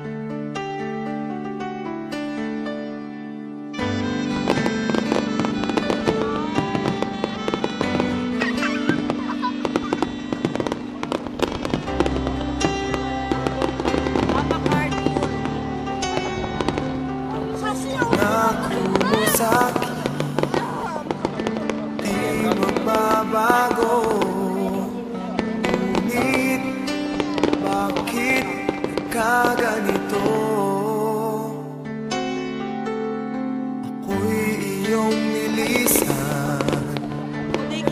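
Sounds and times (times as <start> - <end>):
music with long held notes: 0.0 - 37.9
fireworks bangs and crackles: 4.0 - 31.2, 34.4 - 37.9.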